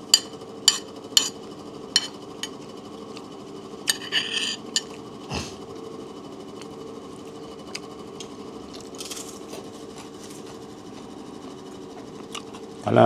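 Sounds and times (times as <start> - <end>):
mechanical hum: 0.0 - 13.0
spoon clinking on plate: 3.9 - 5.0.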